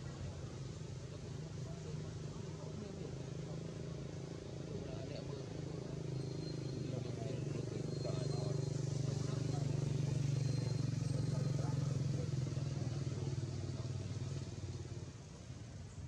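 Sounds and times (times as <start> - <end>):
small engine running: 0.0 - 16.0.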